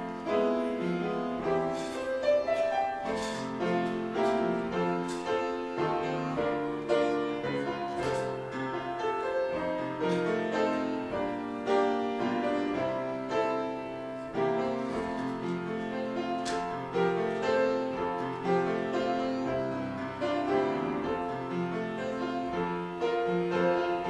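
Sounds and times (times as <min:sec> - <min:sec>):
grand piano playing: 0:00.0 - 0:24.0.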